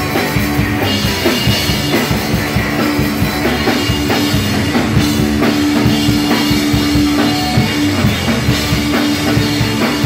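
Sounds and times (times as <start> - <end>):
bass guitar: 0.0 - 10.0
drum kit beat: 0.0 - 10.0
electric guitar: 0.0 - 10.0.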